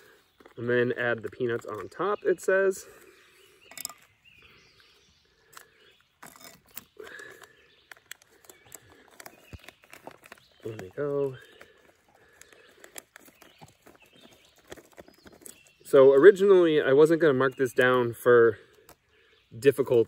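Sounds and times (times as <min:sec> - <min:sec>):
light clicks of peanuts: 0:05.5 - 0:16.4
plastic packet crinkling: 0:06.2 - 0:15.8.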